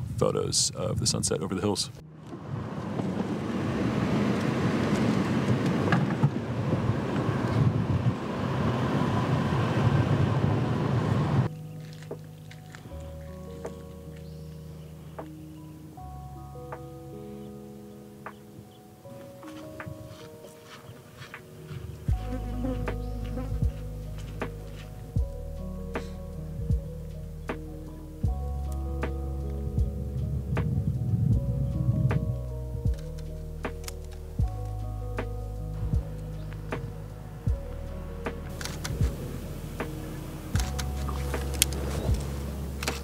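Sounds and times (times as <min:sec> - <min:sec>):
car road and engine noise: 0:02.0 - 0:16.5, 0:19.1 - 0:43.0
soft slow background music: 0:11.4 - 0:43.0.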